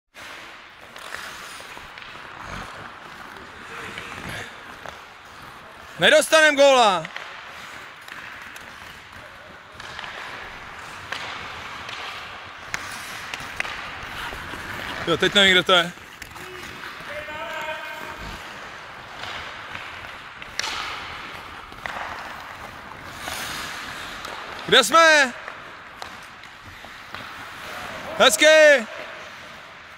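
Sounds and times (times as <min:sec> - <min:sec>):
hockey sticks and puck clicking: 0:00.2 - 0:29.9
skates scraping on ice: 0:00.2 - 0:29.9.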